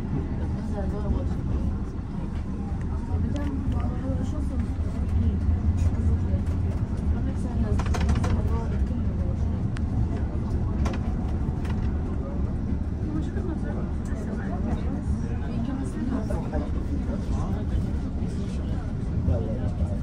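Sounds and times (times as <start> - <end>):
passengers' voices: 0.0 - 20.0
tram rumbling on rails: 0.0 - 20.0.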